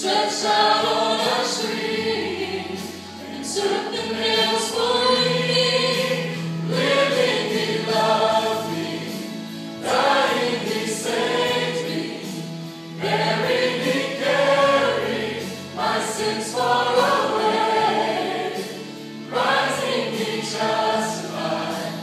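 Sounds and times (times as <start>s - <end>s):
church choir singing a hymn: 0.0s - 22.0s.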